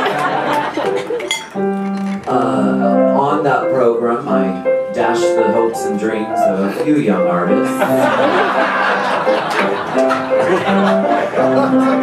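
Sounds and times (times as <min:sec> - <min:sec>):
piano playing held chords: 0:00.0 - 0:12.0
glassy clink: 0:01.3 - 0:01.6.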